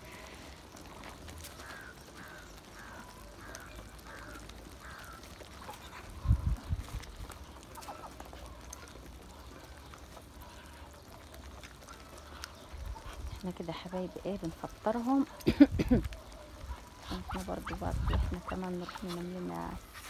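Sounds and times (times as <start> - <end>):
ducks calling: 0.0 - 20.0.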